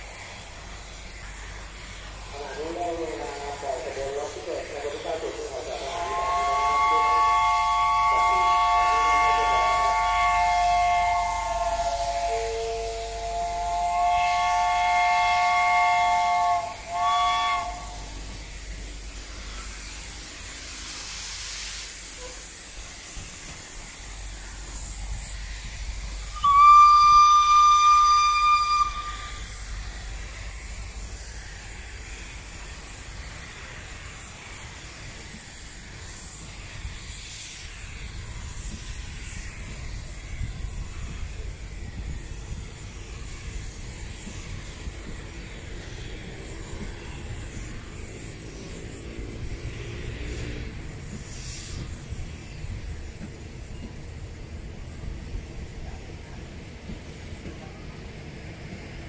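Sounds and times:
steam locomotive chord whistle: 0:02.3 - 0:18.4, 0:26.3 - 0:29.8
single-note whistle: 0:26.3 - 0:29.6.

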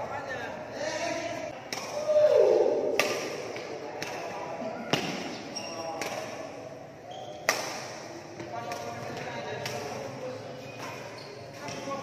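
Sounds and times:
rackets striking shuttlecock: 0:02.8 - 0:04.3, 0:07.3 - 0:10.0.

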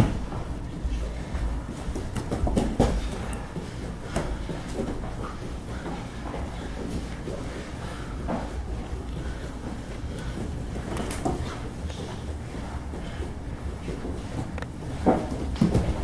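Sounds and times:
bodies thudding on a foam mat: 0:00.0 - 0:07.4, 0:13.8 - 0:16.0.

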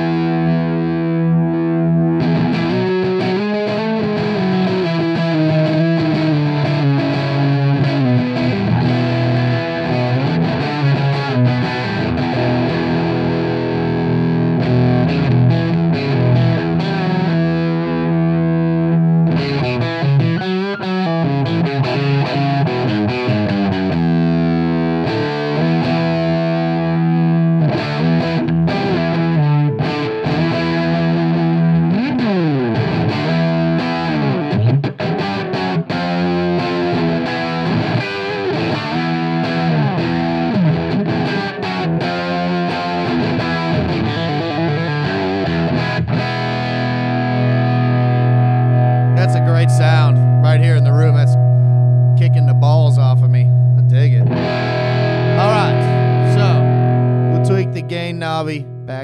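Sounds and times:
distorted electric guitar: 0:00.0 - 0:59.0.

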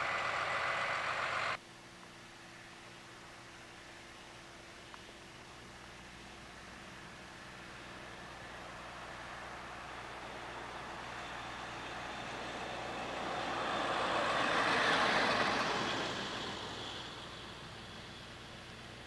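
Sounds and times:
vehicle tyre and road noise: 0:00.0 - 0:01.6, 0:02.6 - 0:19.0.

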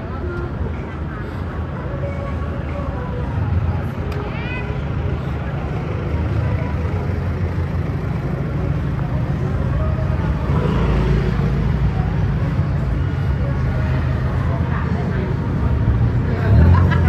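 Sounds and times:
faint voices: 0:00.0 - 0:17.0
slow street traffic rumble: 0:00.0 - 0:17.0.

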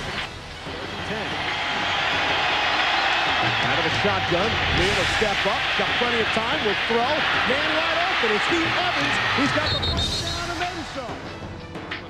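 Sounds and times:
stadium crowd roar: 0:01.0 - 0:10.9.

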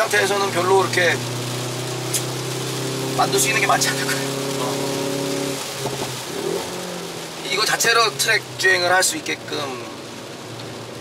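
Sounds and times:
car engine from inside cabin: 0:00.0 - 0:11.0
tyres hissing on wet track: 0:00.0 - 0:11.0.

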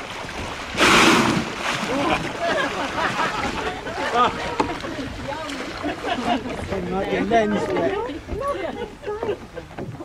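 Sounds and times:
rushing water: 0:00.0 - 0:10.0
people chattering excitedly: 0:01.9 - 0:09.8.

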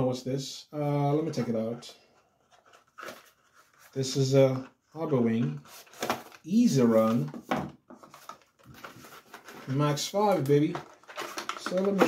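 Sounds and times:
cardboard box handling: 0:02.4 - 0:04.0.

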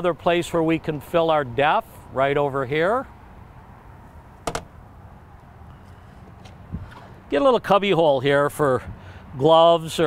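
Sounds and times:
small door clicking shut: 0:04.4 - 0:04.7.

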